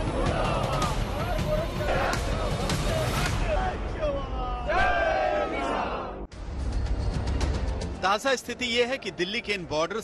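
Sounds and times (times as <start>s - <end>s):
crowd shouting a slogan: 0.0s - 3.8s, 4.5s - 6.2s.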